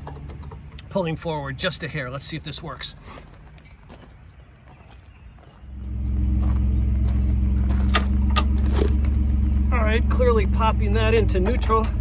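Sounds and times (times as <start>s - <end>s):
pickup engine idling: 5.7s - 12.0s.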